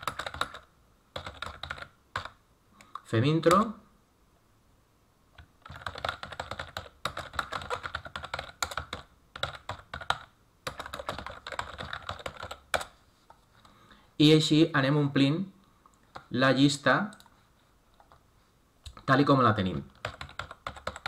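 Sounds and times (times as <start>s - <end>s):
fast typing on keyboard: 0.0s - 2.4s, 5.4s - 12.9s, 19.9s - 21.0s.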